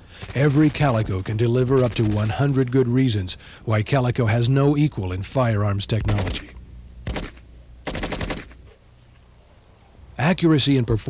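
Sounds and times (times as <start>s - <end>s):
submachine gun automatic fire: 0.1s - 2.6s, 6.0s - 8.6s.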